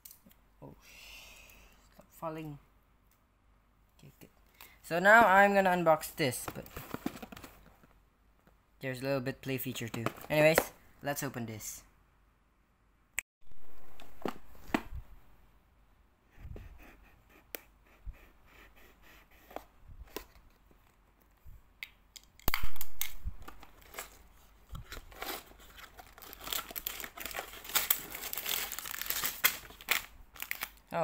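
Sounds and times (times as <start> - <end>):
plastic bags crinkling: 23.6 - 30.9.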